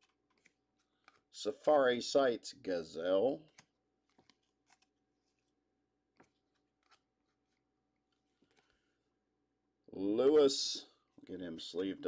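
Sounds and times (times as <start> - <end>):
cards being flipped: 0.0 - 1.3, 3.4 - 8.8.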